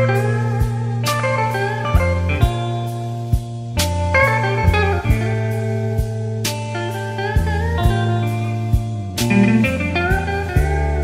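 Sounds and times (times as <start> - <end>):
electric blues instrumental: 0.0 - 11.0.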